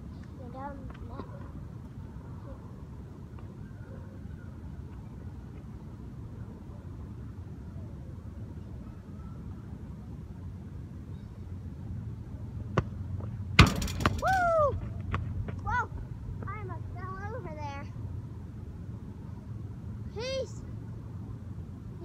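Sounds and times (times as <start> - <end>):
child exclaiming: 20.1 - 20.6.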